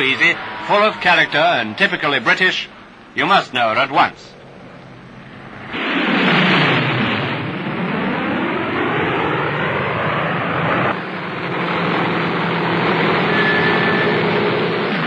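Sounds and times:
aircraft engines droning: 0:00.0 - 0:15.0.

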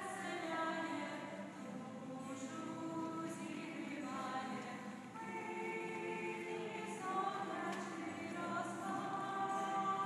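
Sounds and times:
church choir singing unaccompanied: 0:00.0 - 0:10.0.

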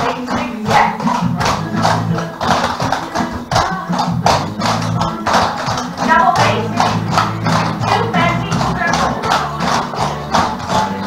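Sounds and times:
song with vocals: 0:00.0 - 0:11.0
tap shoes clicking on wooden floor: 0:00.0 - 0:11.0.

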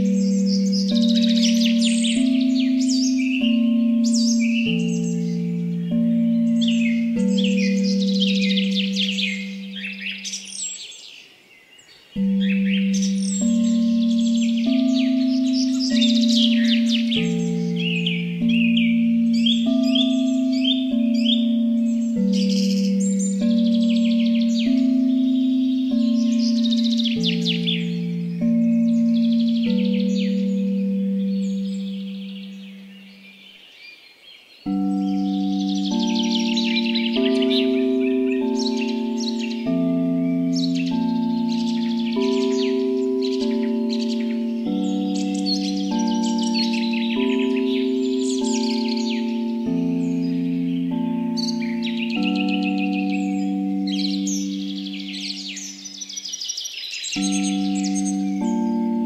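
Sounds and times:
singing bowl tones: 0:00.0 - 0:10.8, 0:12.2 - 0:33.4, 0:34.6 - 0:59.0
birds chirping: 0:00.0 - 0:59.0.

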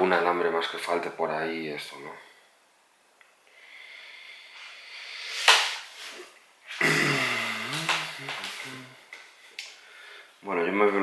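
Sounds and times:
man humming: 0:06.8 - 0:09.0.

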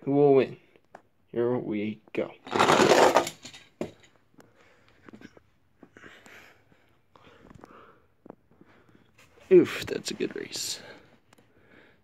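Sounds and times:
toy wheels rattling on plastic track: 0:02.5 - 0:03.6.

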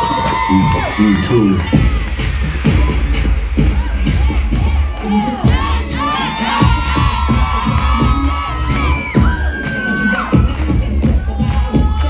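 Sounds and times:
children shouting and cheering: 0:00.0 - 0:12.0
dance music with thumping beat: 0:00.0 - 0:12.0.

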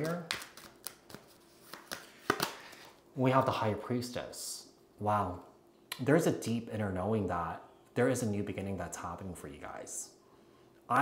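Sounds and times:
cards being shuffled: 0:00.0 - 0:03.0.

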